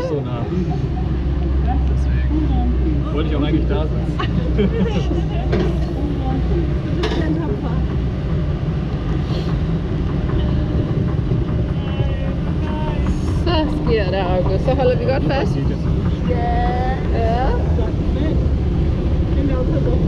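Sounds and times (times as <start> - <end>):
raft boat rumbling in water: 0.0 - 20.0.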